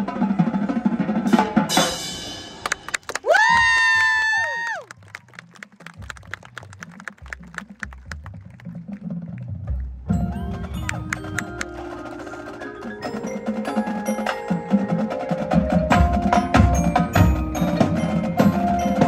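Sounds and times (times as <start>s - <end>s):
marching band playing: 4.9s - 19.0s
clicking percussion: 10.2s - 12.5s.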